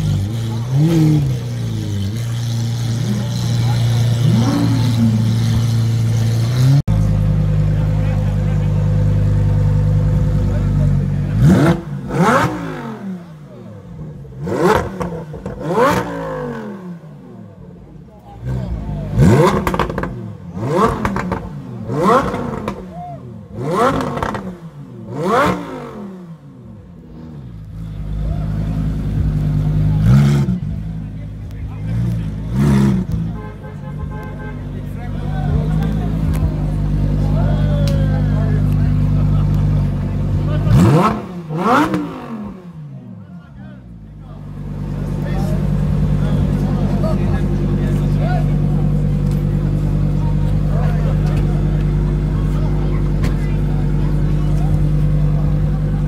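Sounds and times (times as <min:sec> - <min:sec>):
sports car engine idling: 0:00.0 - 0:56.0
sports car engine revving: 0:00.0 - 0:56.0.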